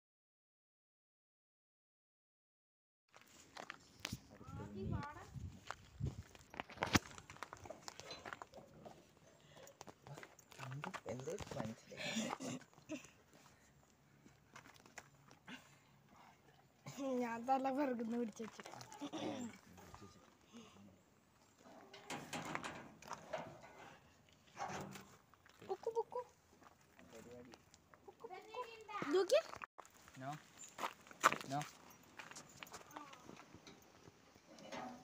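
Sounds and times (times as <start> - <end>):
footsteps: 3.1 - 13.6, 21.4 - 35.0.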